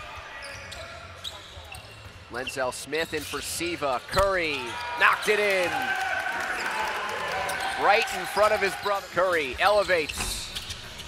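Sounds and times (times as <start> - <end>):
sneakers squeaking: 0.0 - 4.8, 8.8 - 11.0.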